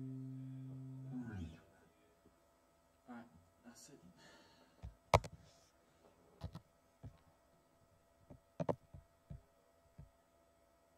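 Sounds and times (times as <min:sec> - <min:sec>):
faint steady hum: 0:00.0 - 0:10.9
soft knocks and clicks: 0:08.3 - 0:09.4.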